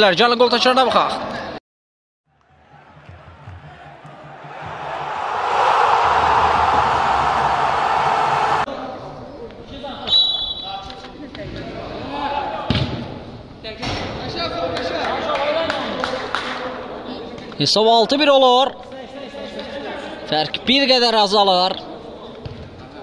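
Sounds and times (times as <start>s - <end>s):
players shouting: 4.2s - 8.7s
rising rushing swell: 4.8s - 8.7s.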